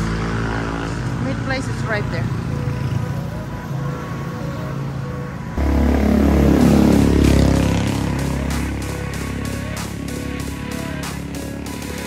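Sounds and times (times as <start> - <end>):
road traffic: 0.0 - 12.0
motorcycle engine rumbling: 5.6 - 12.0.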